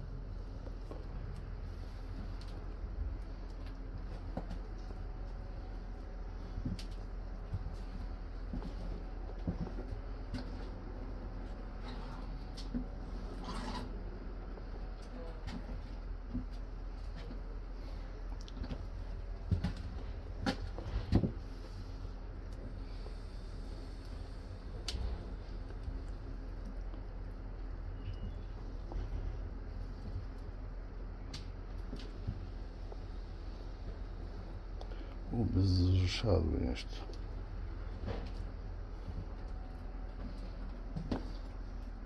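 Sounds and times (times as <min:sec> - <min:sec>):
train low hum: 0:00.0 - 0:42.0.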